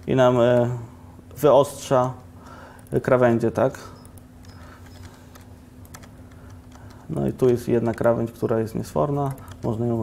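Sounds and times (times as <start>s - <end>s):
steady low hum: 0.0s - 10.0s
computer keyboard keystrokes: 4.0s - 9.9s.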